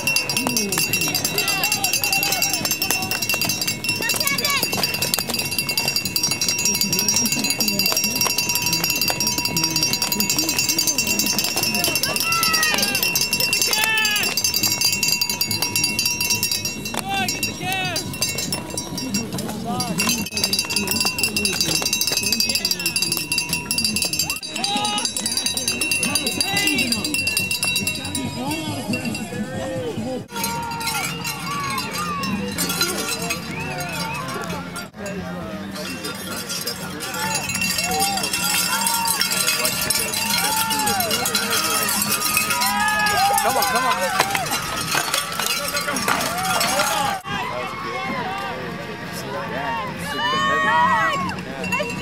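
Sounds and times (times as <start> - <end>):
spectators shouting: 0.0 - 7.2, 7.8 - 19.3, 24.2 - 28.0, 30.3 - 34.8, 37.0 - 51.8
cowbells clanging: 0.0 - 47.4, 50.2 - 52.0.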